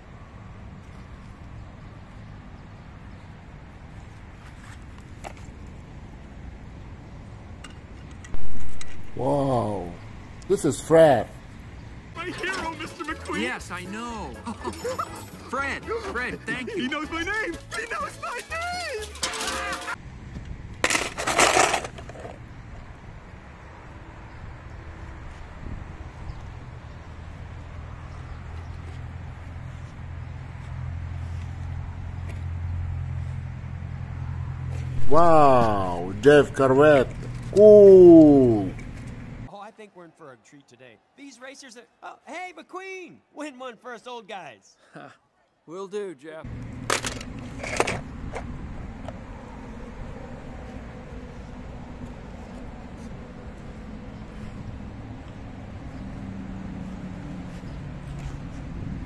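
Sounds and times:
toy cars clattering in plastic bowl: 17.8s - 20.0s, 20.8s - 22.4s.

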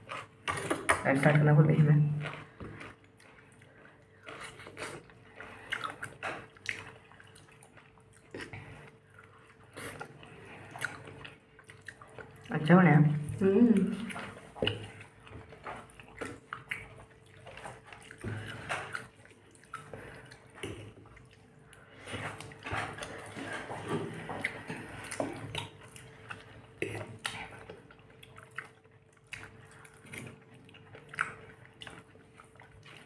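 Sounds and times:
chewing and wet mouth sounds: 0.0s - 33.0s.

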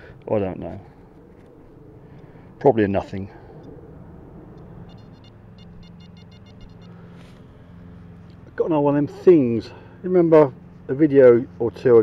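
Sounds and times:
low background hum: 0.0s - 12.0s
metal detector beeps: 4.6s - 7.2s.

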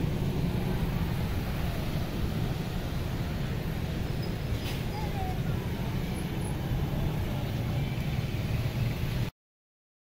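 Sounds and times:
road traffic rumble: 0.0s - 9.3s.

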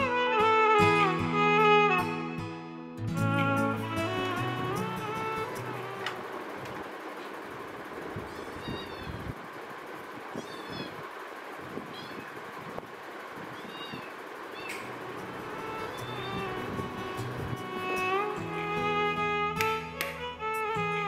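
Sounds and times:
kitten mewing: 8.3s - 9.4s, 10.3s - 11.0s, 11.9s - 12.4s, 13.5s - 14.9s
steady background hiss: 12.4s - 19.5s.

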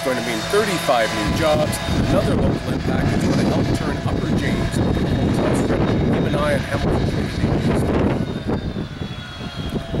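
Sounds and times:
faint high whine: 0.0s - 10.0s
low engine rumble: 0.0s - 10.0s.

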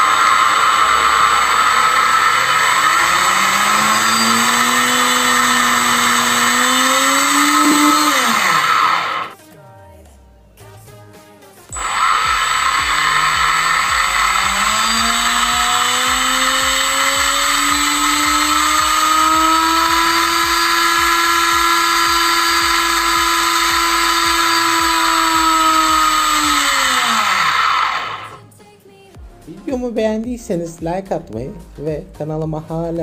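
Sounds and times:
electric motor whining: 0.0s - 9.4s, 11.7s - 28.5s.

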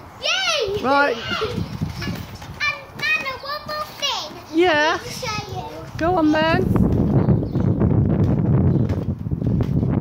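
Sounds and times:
wind rumble on microphone: 0.7s - 3.9s, 4.5s - 10.0s.

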